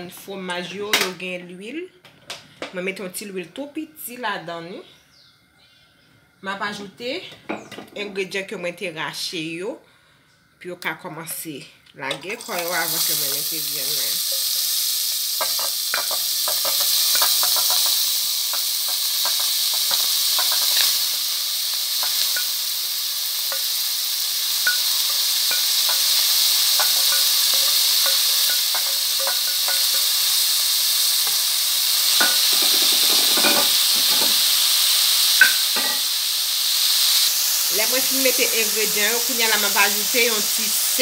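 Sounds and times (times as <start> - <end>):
vegetables sizzling in hot oil: 11.5 - 41.0.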